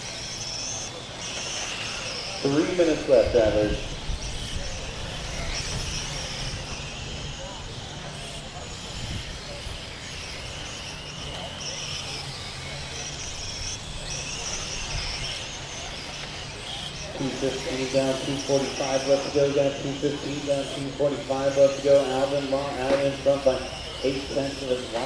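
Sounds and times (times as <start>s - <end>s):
rc car motors whining: 0.0s - 25.0s.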